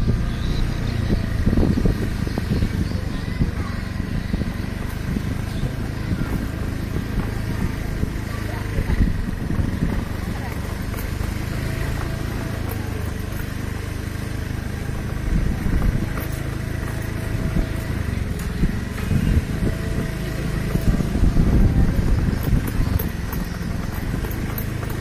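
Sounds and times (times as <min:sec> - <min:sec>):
indistinct voices: 0:00.0 - 0:25.0
scooter engine passing: 0:00.0 - 0:25.0.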